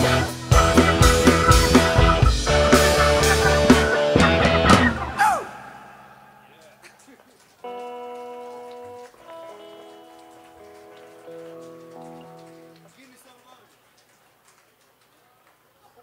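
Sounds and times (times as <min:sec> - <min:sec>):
rock band final chord: 0:00.0 - 0:06.6
soft organ chords: 0:00.0 - 0:12.8.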